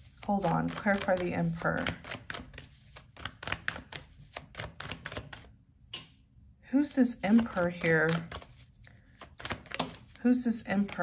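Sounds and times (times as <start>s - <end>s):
cards being shuffled: 0.0s - 5.5s, 7.3s - 11.0s.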